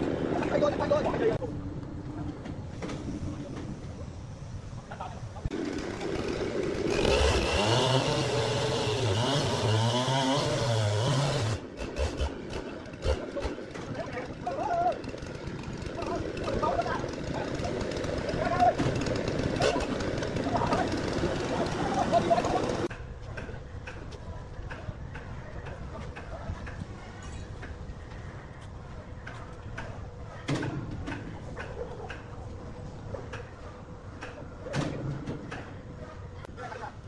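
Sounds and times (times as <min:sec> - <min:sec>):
chainsaw cutting log: 0:05.5 - 0:22.9
chainsaw engine revving: 0:05.5 - 0:22.9
people talking: 0:15.9 - 0:18.9, 0:19.6 - 0:23.5.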